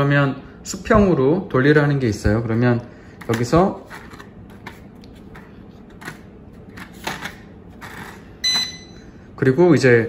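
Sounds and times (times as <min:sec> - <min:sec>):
short high electronic beep: 0:08.4 - 0:09.0.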